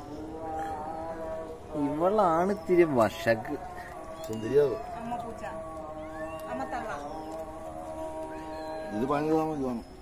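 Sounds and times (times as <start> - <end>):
cat meowing: 6.0 - 7.0, 8.2 - 9.6.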